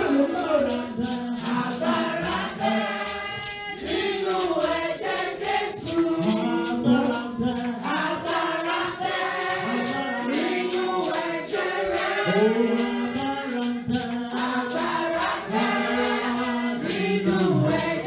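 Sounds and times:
congregation singing: 0.0 - 18.0
rhythmic hand clapping: 0.0 - 18.0.

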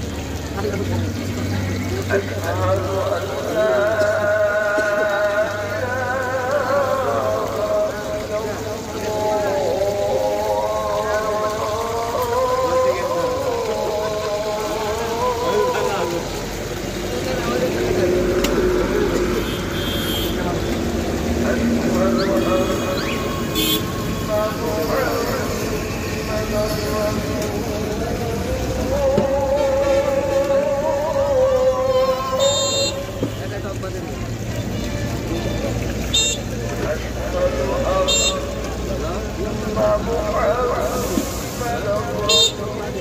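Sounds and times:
chicken sizzling in deep oil: 0.0 - 37.5
background voices: 0.0 - 43.0
traffic rumble: 0.0 - 43.0
horn toots: 19.3 - 20.8, 22.2 - 24.2.

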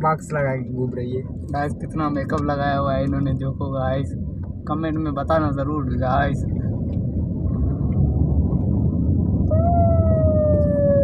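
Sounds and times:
car driving rumble: 0.0 - 11.0
loud long falling tone: 9.4 - 11.0.

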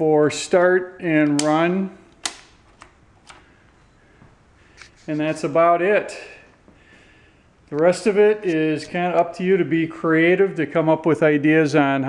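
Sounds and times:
toggle switch clicks: 1.2 - 3.4.

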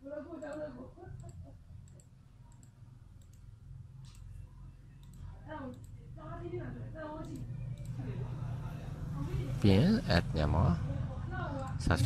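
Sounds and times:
faint low hum: 0.0 - 12.0
computer mouse clicking: 1.2 - 4.3, 5.0 - 6.0.

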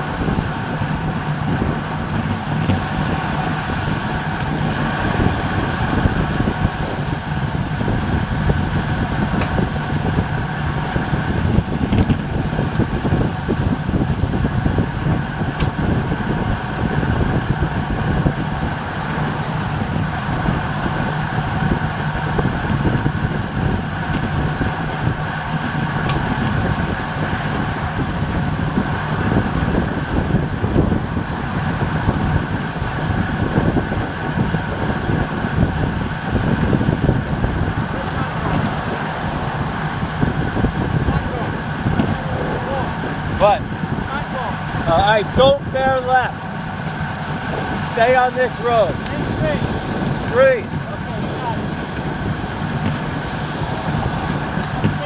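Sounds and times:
bike tyres on asphalt: 0.0 - 55.0
wind on microphone: 0.0 - 55.0.

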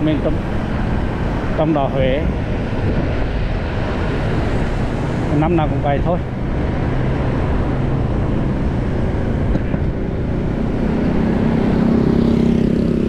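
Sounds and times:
motorbike engine hum: 0.0 - 13.0
road noise: 0.0 - 13.0.

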